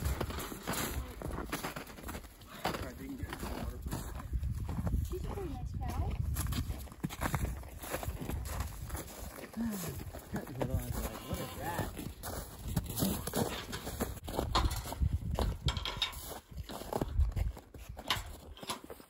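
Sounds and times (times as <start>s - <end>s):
hooves and footsteps on snow: 0.0s - 19.0s.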